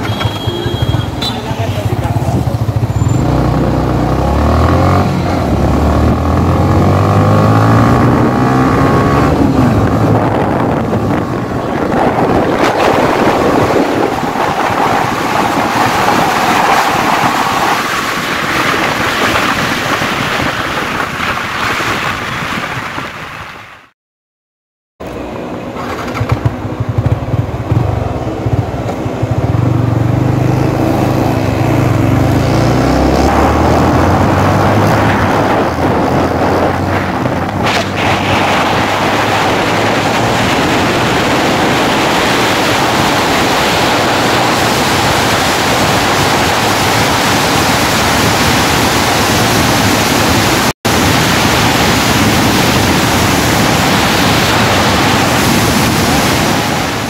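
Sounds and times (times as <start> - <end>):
motorcycle engine accelerating: 0.0 - 19.6, 25.0 - 57.0
wind noise: 2.2 - 23.9, 25.8 - 57.0.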